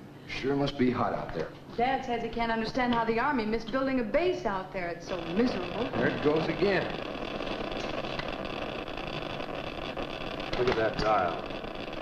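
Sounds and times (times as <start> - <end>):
geiger counter crackling: 1.0 - 12.0.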